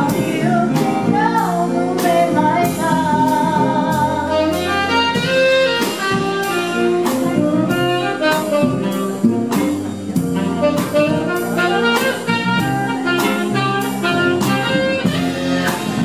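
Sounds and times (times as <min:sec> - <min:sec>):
electric bass: 0:00.0 - 0:16.0
piano: 0:00.0 - 0:16.0
steady beat: 0:00.0 - 0:16.0
tenor saxophone melody: 0:00.0 - 0:16.0.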